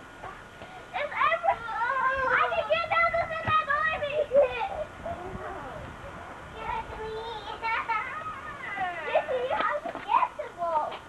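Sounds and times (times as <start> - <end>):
children shouting while playing: 0.9 - 5.7, 6.6 - 10.6.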